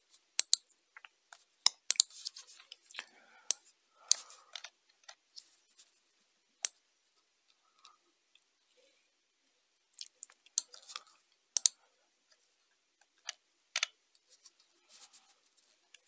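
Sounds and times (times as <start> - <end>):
computer mouse clicks: 11.6 - 11.8.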